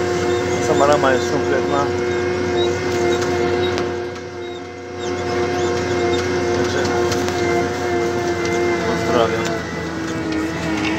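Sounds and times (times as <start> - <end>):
tractor engine droning under load: 0.0 - 10.9.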